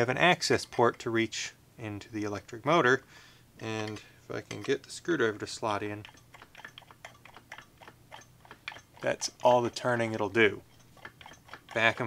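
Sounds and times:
screwdriver clicking and scraping: 0:06.0 - 0:09.7, 0:10.7 - 0:12.0.

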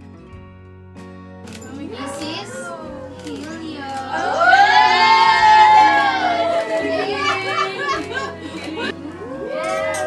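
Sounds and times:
background music: 0:00.0 - 0:10.0
women chattering and laughing: 0:01.7 - 0:09.9.

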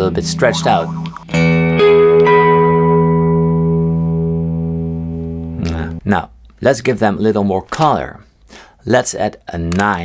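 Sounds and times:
electric guitar chord ringing: 0:00.0 - 0:06.0.

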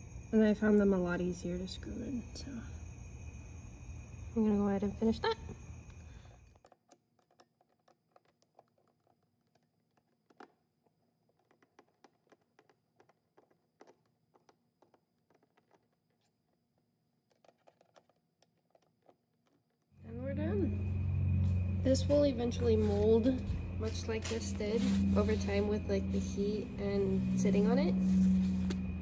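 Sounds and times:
light clicks of screws and tool: 0:06.0 - 0:16.6.

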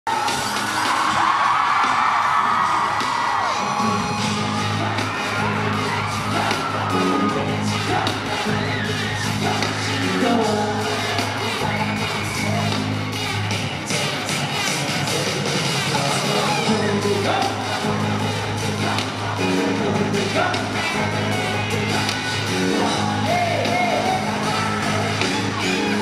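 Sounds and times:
crowd cheering: 0:00.0 - 0:26.0
pop music over loudspeakers: 0:00.1 - 0:26.0.

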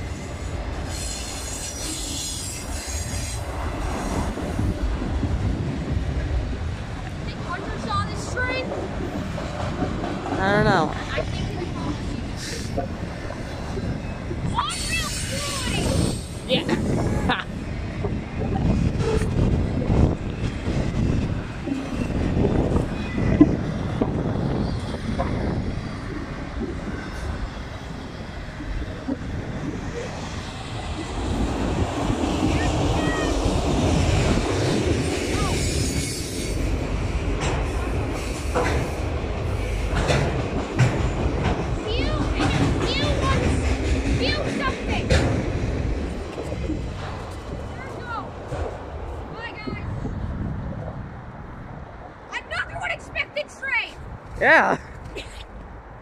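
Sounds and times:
train cars rattling: 0:00.0 - 0:50.0
train wheels rumbling on rail: 0:00.0 - 0:56.0.

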